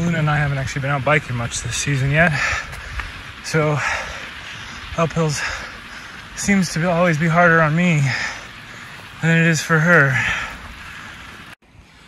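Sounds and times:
wind on microphone: 0.0 - 3.6
bike tyres rolling on dirt: 0.0 - 12.0.

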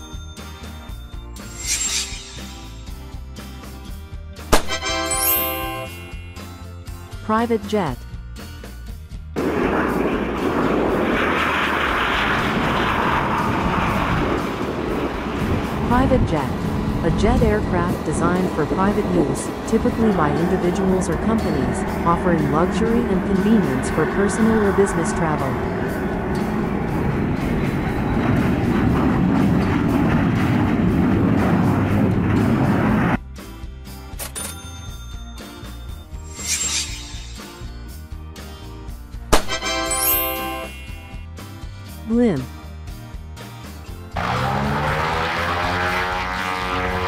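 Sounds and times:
background music: 0.0 - 9.4, 15.4 - 29.0, 33.2 - 47.0
jet engines rushing: 9.4 - 33.2, 44.2 - 47.0.

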